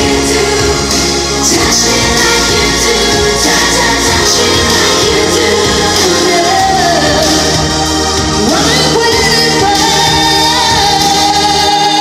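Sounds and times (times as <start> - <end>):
backing track: 0.0 - 12.0
woman singing into a microphone: 0.0 - 12.0.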